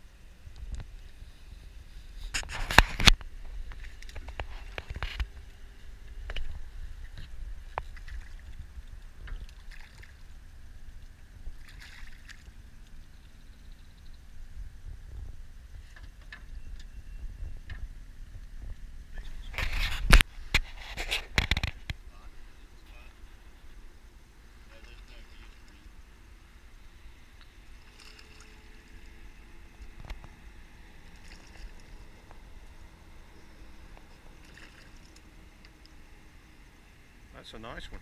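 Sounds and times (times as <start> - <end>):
fish splashing at surface: 11.6 - 12.5, 34.4 - 35.2.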